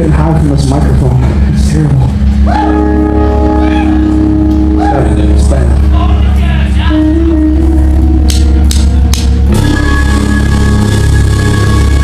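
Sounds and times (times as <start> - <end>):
live rock band playing: 0.0 - 12.0.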